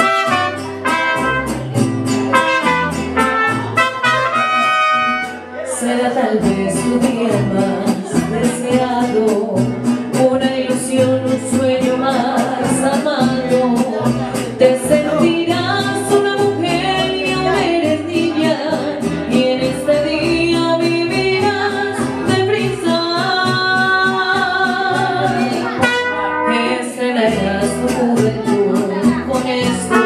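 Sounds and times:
mariachi band playing and singing: 0:00.0 - 0:30.0.

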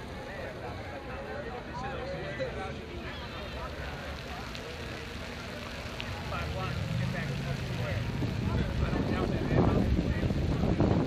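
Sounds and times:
crowd chatter: 0:00.0 - 0:11.0
low rumble: 0:05.9 - 0:11.0.

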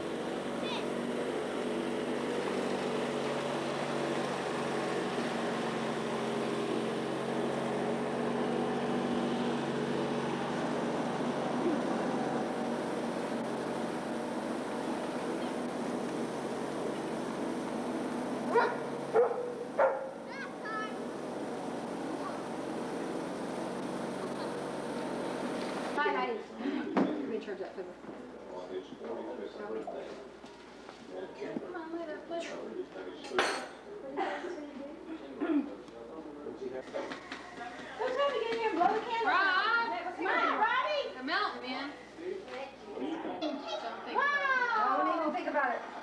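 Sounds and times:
steady background hum: 0:00.0 - 0:46.0
dog barking: 0:18.5 - 0:20.2.

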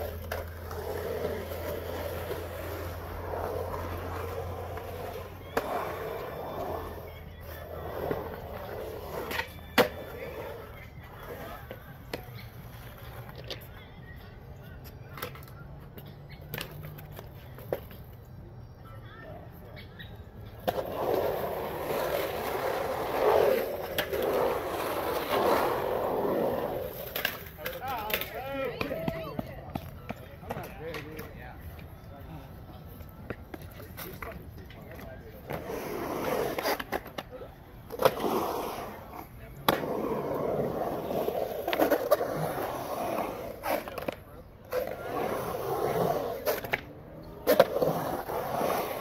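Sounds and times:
skateboard clacking: 0:00.0 - 0:18.3, 0:19.6 - 0:32.0, 0:32.7 - 0:49.0
skateboard wheels rolling on concrete: 0:00.0 - 0:49.0.

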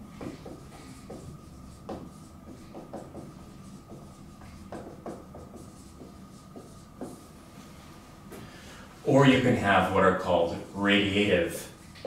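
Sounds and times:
marker writing on whiteboard: 0:00.0 - 0:07.4, 0:09.1 - 0:12.0.

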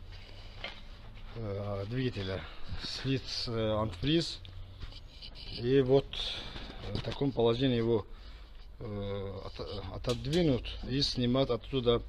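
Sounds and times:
man speaking: 0:01.3 - 0:04.5, 0:05.5 - 0:08.1, 0:08.8 - 0:12.0.

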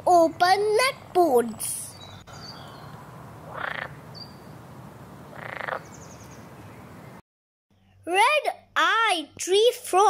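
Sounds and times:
frog croaking: 0:03.5 - 0:04.4, 0:05.3 - 0:06.0.

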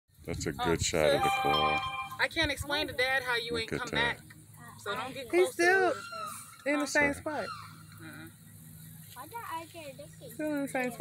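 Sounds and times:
low steady hum: 0:00.2 - 0:11.0.

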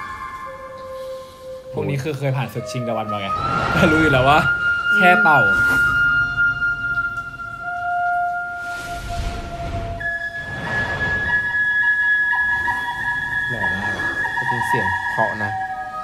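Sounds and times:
bamboo flute melody: 0:00.0 - 0:16.0
rushing noise: 0:08.6 - 0:14.4.

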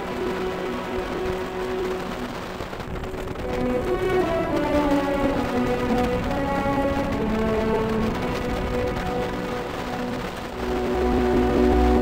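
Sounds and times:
background music: 0:00.0 - 0:12.0
road rumble: 0:00.0 - 0:12.0
wind rushing: 0:00.0 - 0:12.0.

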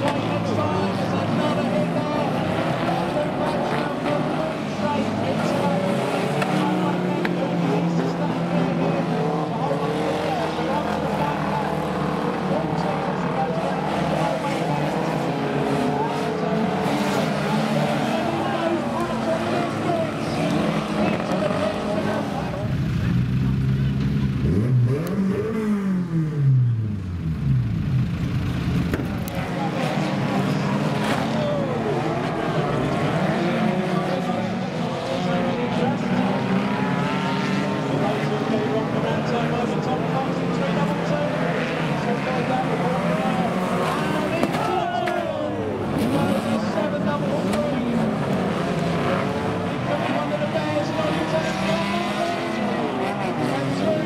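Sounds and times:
racing car engines revving: 0:00.0 - 0:54.0.

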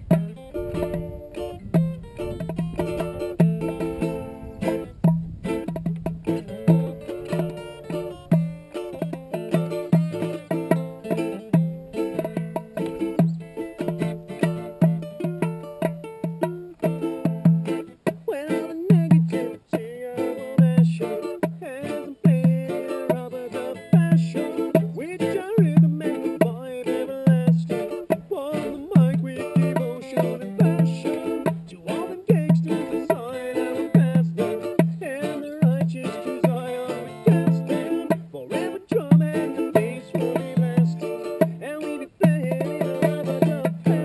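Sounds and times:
ukulele and acoustic guitar strumming: 0:00.0 - 0:44.0.

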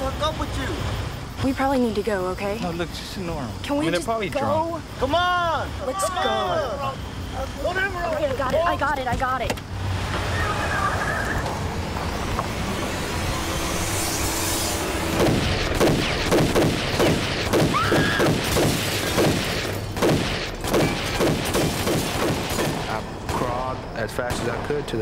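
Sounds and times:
assault rifle gunfire: 0:15.2 - 0:22.9.

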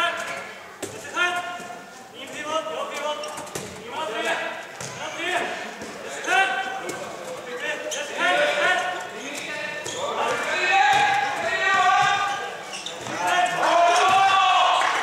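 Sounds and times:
voices echoing: 0:00.0 - 0:15.0
ball bouncing on court floor: 0:03.0 - 0:03.8, 0:04.8 - 0:05.1, 0:09.3 - 0:14.3
high-pitched shoe squeals: 0:12.6 - 0:13.4.

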